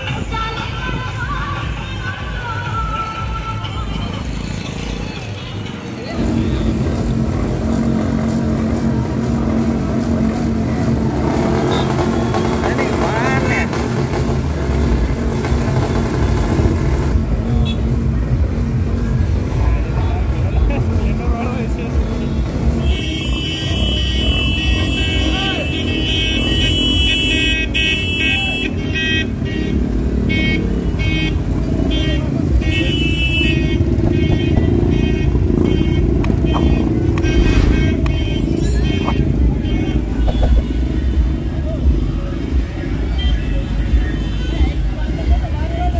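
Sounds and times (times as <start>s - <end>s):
music: 0.0s - 6.8s
crowd voices: 0.0s - 45.9s
motorcycle engines passing: 0.0s - 45.9s.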